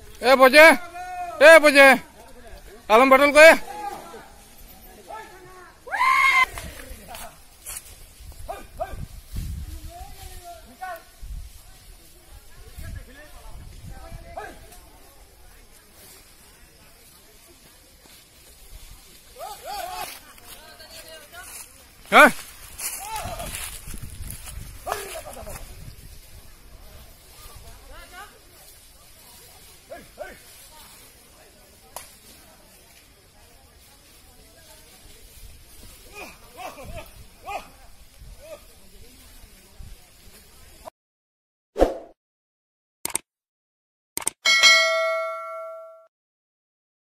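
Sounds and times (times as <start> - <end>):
notification bell ding: 44.4 - 46.1.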